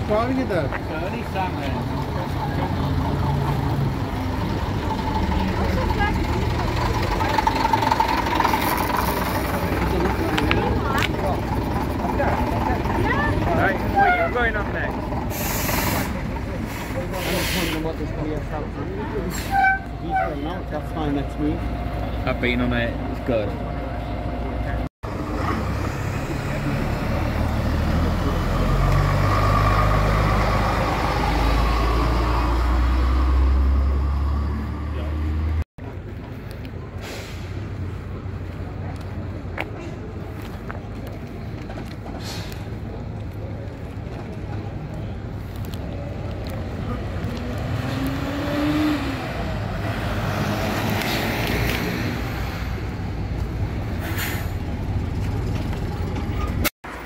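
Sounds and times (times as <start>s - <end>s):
bus diesel engine rumble: 0.0s - 57.0s
outdoor traffic noise: 0.0s - 57.0s.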